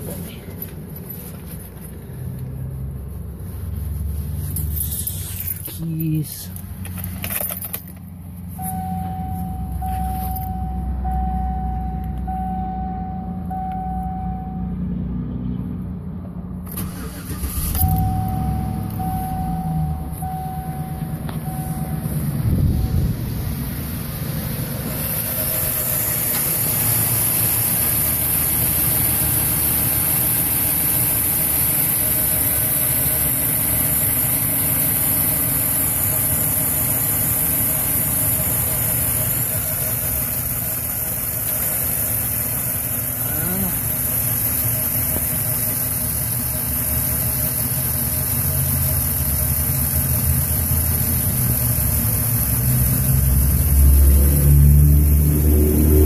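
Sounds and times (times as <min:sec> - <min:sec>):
truck engine idling: 0:00.0 - 0:56.0
dashboard chime beeping: 0:08.6 - 0:14.8, 0:17.8 - 0:23.2
starter motor cranking: 0:16.7 - 0:20.4, 0:24.7 - 0:55.4.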